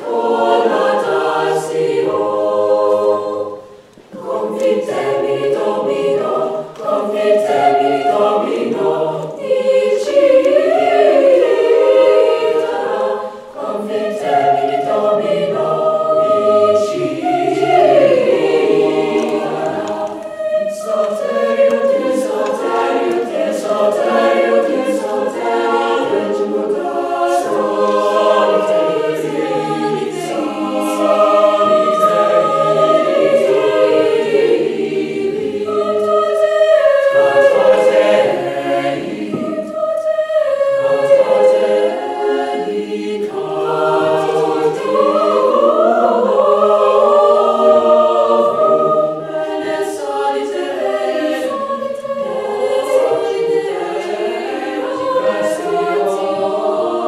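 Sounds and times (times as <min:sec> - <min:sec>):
choir singing unaccompanied: 0:00.0 - 0:57.0.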